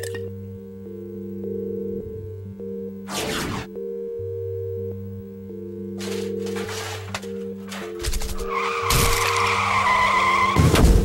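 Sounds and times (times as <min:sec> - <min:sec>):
background music: 0:00.0 - 0:11.0
car tyres screeching: 0:07.7 - 0:11.0.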